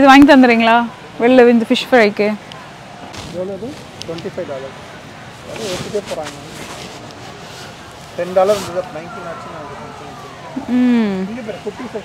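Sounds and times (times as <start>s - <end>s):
store background hum: 0.0s - 12.0s
woman's drawn-out exclamation: 10.6s - 11.3s.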